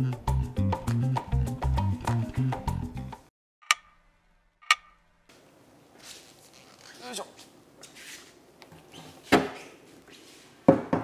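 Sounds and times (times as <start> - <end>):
background music: 0.0 - 3.3.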